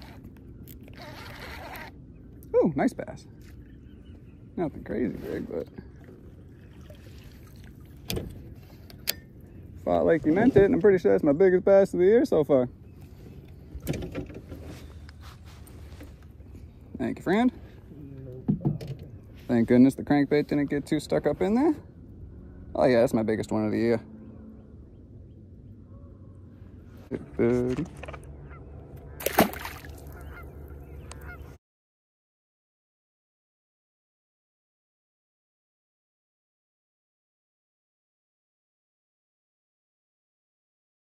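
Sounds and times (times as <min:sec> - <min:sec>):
clothing rustling on microphone: 0:14.4 - 0:16.7
distant honking bird calls: 0:23.8 - 0:26.8, 0:28.3 - 0:31.6
fish splashing into water: 0:29.1 - 0:30.4.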